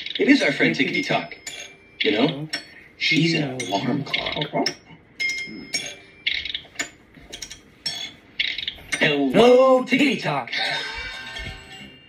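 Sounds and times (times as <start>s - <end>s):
clock ticking: 0.0s - 9.7s.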